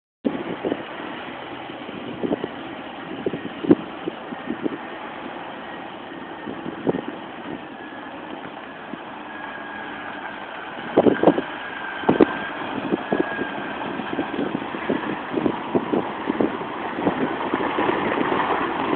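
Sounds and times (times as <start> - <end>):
truck diesel engine running: 0.3 - 18.9.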